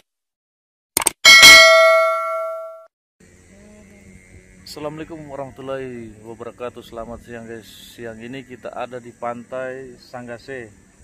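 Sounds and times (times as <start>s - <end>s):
bell-like chime: 1.3s - 2.8s.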